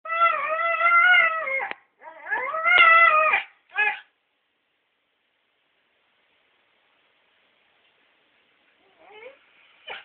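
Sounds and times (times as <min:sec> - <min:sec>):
dog howling whines: 0:00.1 - 0:04.0.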